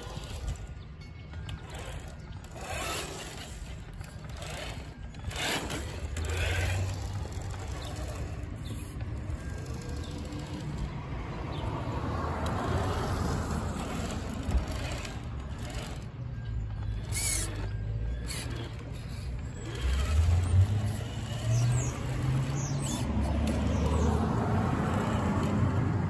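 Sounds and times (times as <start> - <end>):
electric motor and drivetrain whine: 0.0 - 26.0.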